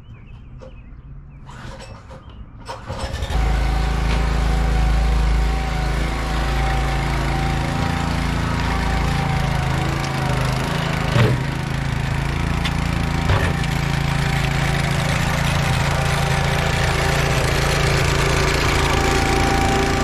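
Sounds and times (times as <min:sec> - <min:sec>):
lawn roller engine running: 0:02.7 - 0:20.0.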